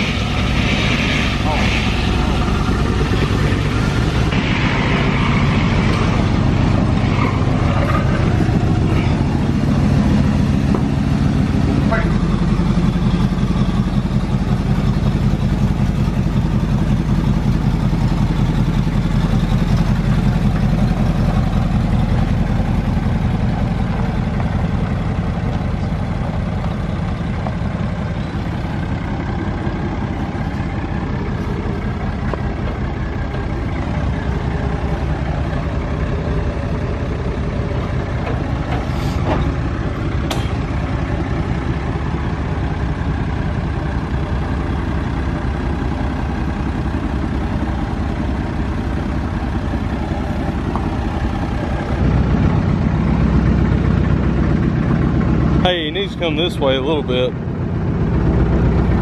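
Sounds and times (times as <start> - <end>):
pickup truck engine running: 0.0 - 59.0.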